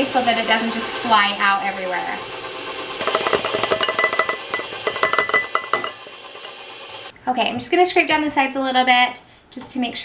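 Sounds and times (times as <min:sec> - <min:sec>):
stand mixer motor whine: 0:00.0 - 0:07.1.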